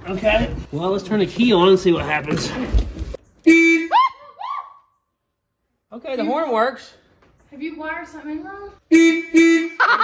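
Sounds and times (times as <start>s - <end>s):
person laughing and whooping: 9.7s - 10.0s.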